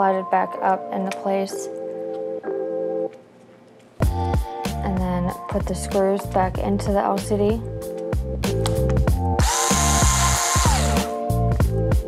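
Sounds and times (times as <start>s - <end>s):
music with steady beat: 4.0s - 12.0s
electric screwdriver whining: 9.4s - 11.1s.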